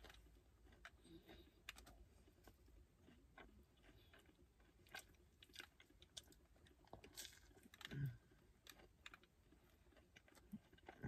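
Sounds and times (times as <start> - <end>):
chewing clicks: 0.0 - 11.0.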